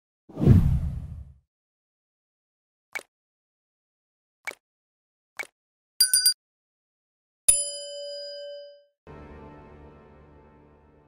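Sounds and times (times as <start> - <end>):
whoosh with deep boom: 0.3 - 1.4.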